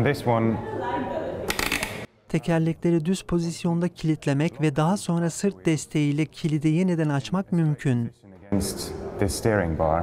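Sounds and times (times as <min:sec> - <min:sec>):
man speaking: 0:02.3 - 0:10.0.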